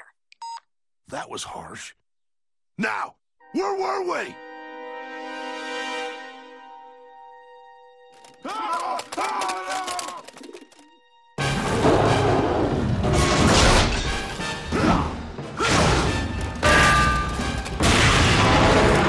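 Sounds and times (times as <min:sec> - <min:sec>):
loud dramatic music: 0:11.4 - 0:19.0.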